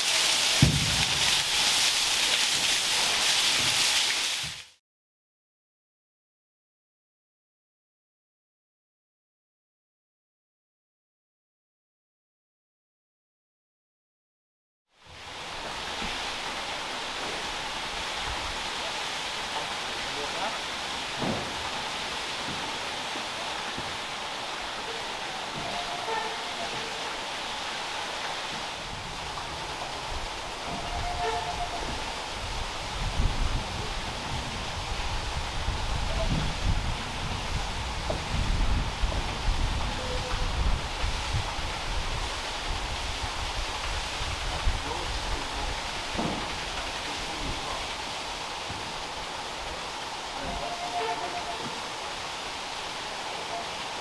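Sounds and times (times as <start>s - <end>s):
water rushing and splashing: 0.0s - 4.8s, 15.0s - 54.0s.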